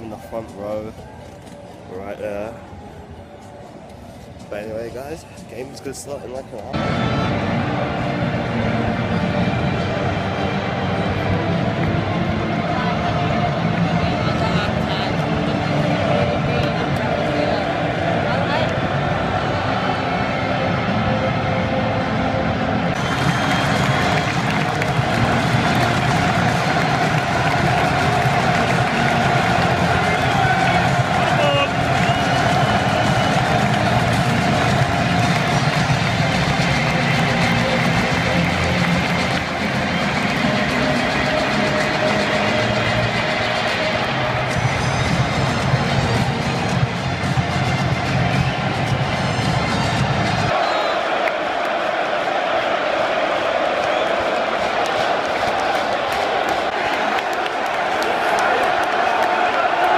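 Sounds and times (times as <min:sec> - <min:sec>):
music over public address: 0:00.0 - 0:51.2
large crowd noise: 0:00.0 - 0:59.9.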